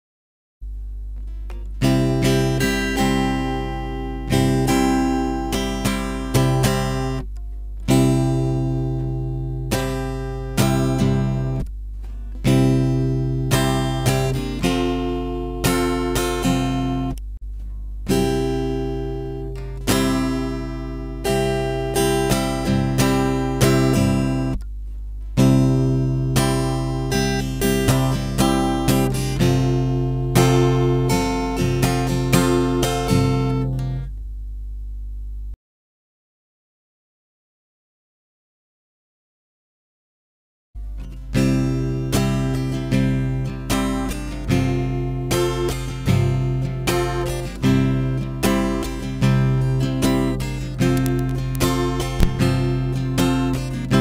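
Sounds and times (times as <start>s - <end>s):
steady low hum: 0.6s - 35.6s, 46.5s - 54.0s
acoustic guitar strumming: 1.2s - 24.6s, 25.2s - 34.1s, 40.8s - 54.0s.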